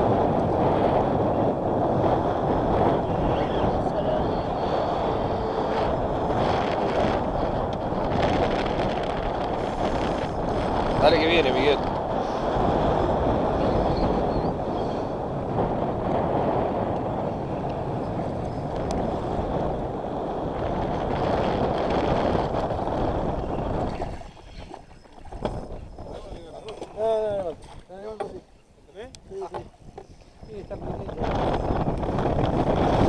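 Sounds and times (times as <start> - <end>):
wind on microphone: 0.0 - 33.0.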